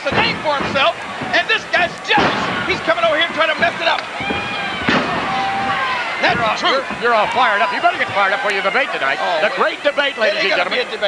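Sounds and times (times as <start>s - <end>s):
body slamming on ring canvas: 0.0s - 8.4s
crowd noise: 0.0s - 11.0s.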